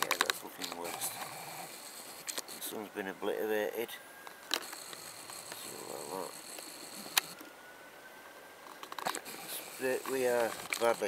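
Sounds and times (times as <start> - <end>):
camera handling noise: 2.2 - 2.6, 4.3 - 5.6, 8.7 - 10.9.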